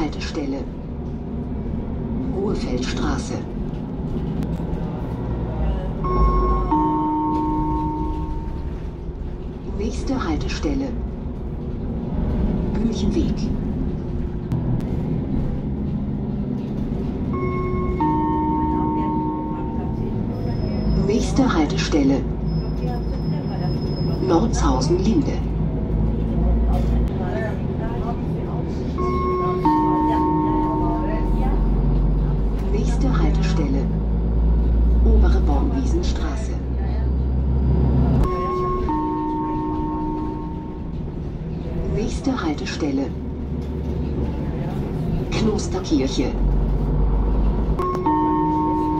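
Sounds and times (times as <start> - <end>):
bus engine and road rumble: 0.0 - 48.9
onboard chime: 6.0 - 8.6.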